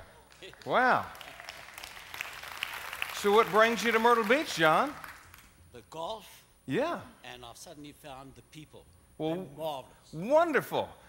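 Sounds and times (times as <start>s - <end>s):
audience applauding: 0.0s - 5.5s.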